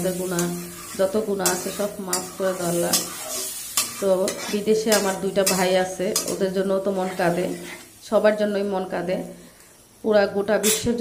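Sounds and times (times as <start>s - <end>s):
metal spatula scraping pan: 0.0s - 8.0s
sauce sizzling: 0.0s - 11.0s.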